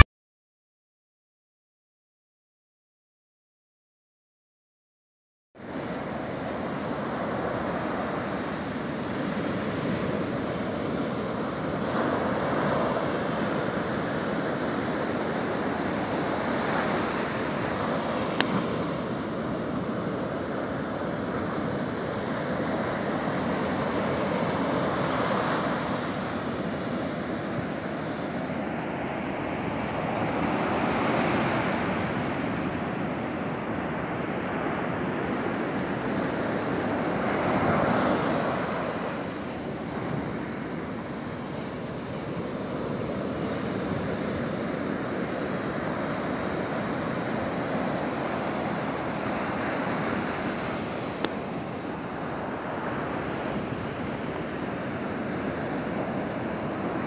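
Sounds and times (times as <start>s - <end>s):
ocean surf breaking on beach: 5.6s - 57.0s.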